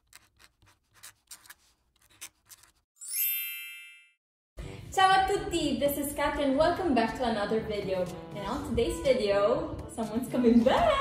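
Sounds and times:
pen scribbling on paper: 0:00.0 - 0:02.8
bright chime: 0:03.0 - 0:04.2.

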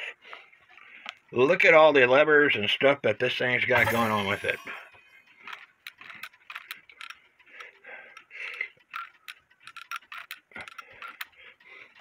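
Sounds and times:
metallic clicks of clock movement: 0:03.8 - 0:12.0.

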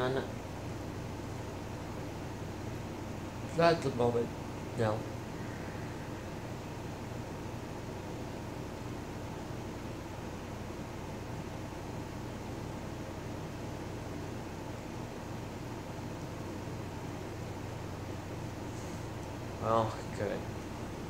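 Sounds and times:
low hum: 0:04.2 - 0:10.3.

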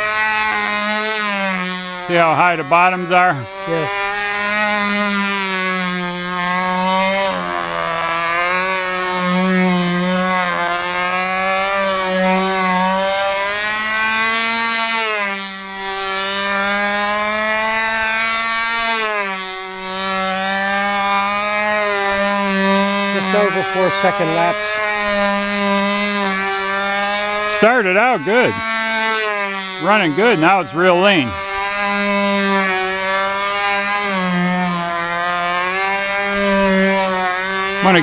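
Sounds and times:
model airplane engine whine: 0:00.0 - 0:38.0.

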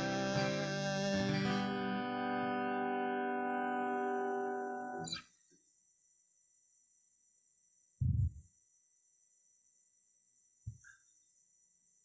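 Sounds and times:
dull low thumps: 0:08.0 - 0:08.4.

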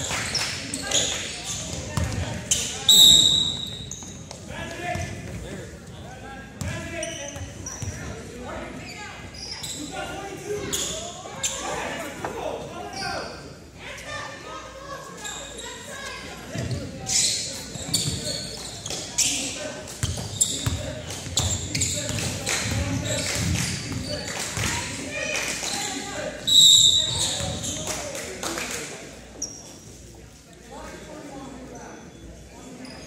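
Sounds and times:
sneakers squeaking: 0:00.0 - 0:06.0, 0:06.6 - 0:12.0, 0:15.2 - 0:25.0, 0:25.6 - 0:28.0, 0:29.3 - 0:30.1, 0:31.9 - 0:33.0.

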